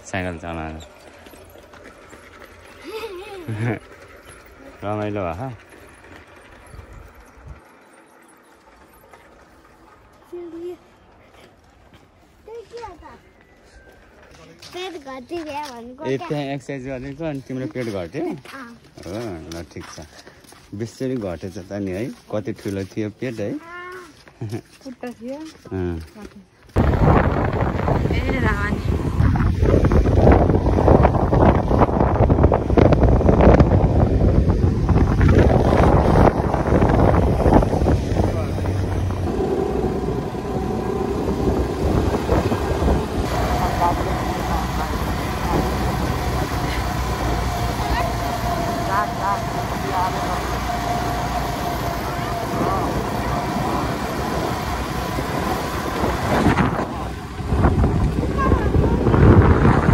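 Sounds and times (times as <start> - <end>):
motorcycle engine running: 0.0 - 11.8, 26.7 - 59.9
wind on microphone: 26.7 - 59.9.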